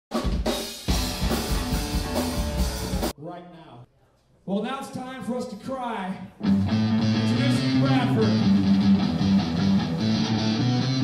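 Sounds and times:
punk rock band playing loudly: 0.1 - 3.1, 6.4 - 11.0.

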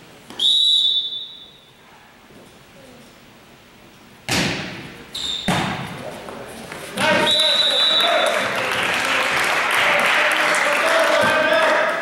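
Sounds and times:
referee's whistle blast: 0.4 - 1.7, 5.1 - 5.6, 7.1 - 8.4.

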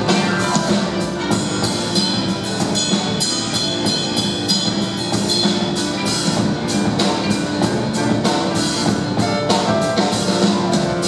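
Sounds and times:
drum and cymbal beat: 0.0 - 11.0
grand piano: 0.0 - 11.0
instrumental funk band: 0.0 - 11.0.

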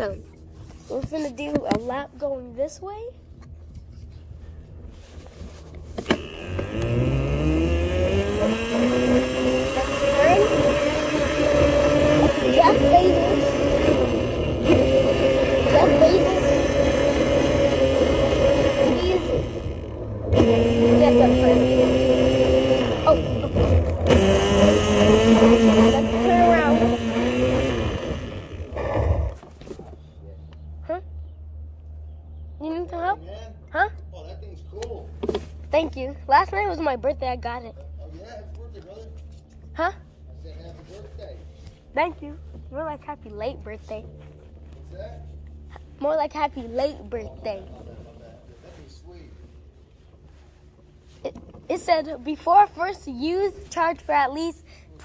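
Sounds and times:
electric motor whining: 5.7 - 29.8.

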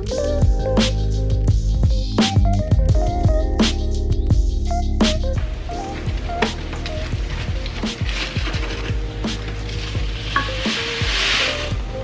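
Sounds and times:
background music: 0.0 - 12.0
rice sizzling in a saucepan: 5.9 - 12.0.

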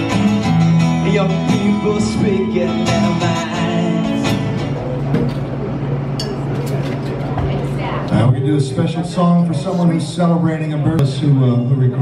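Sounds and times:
background chatter: 3.9 - 12.0.

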